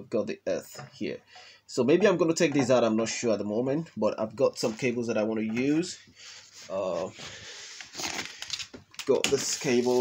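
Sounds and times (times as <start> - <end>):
rustling cables: 6.3 - 10.0.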